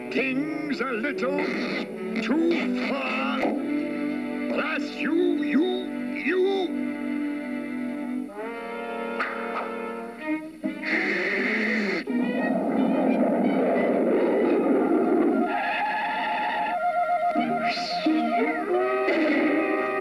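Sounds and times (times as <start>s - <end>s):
cartoon soundtrack music: 0.0s - 20.0s
hissing noise: 10.6s - 16.6s.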